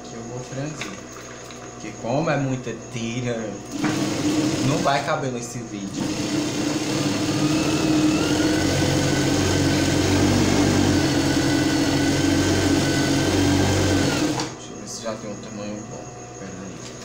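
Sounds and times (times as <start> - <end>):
sewing machine running: 3.7 - 5.1, 5.9 - 14.5.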